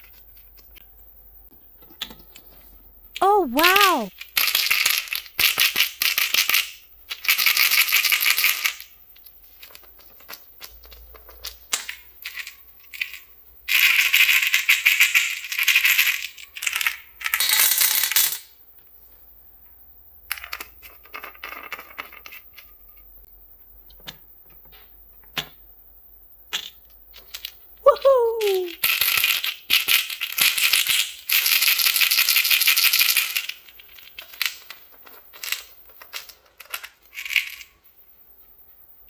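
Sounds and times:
jelly beans rattling in plastic bottle: 0:03.6 - 0:13.1, 0:28.3 - 0:37.8.

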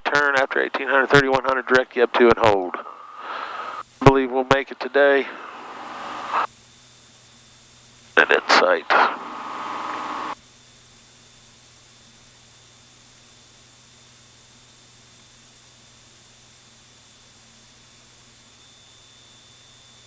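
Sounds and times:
radio static hiss: 0:00.0 - 0:06.6, 0:08.1 - 0:10.4.

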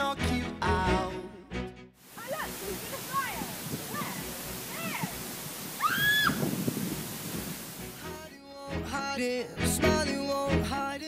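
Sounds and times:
girl squealing: 0:05.8 - 0:06.4.

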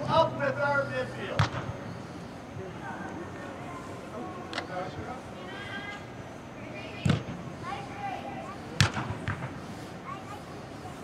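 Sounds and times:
soccer ball kicked thumps: 0:01.3 - 0:01.7.

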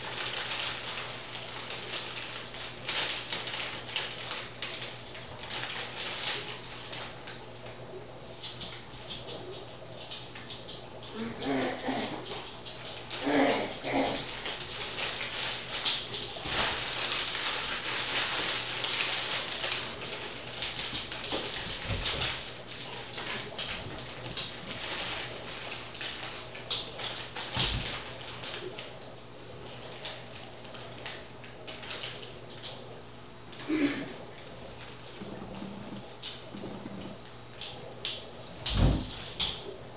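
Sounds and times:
plastic bag crinkling: 0:00.0 - 0:07.7, 0:10.4 - 0:32.9.

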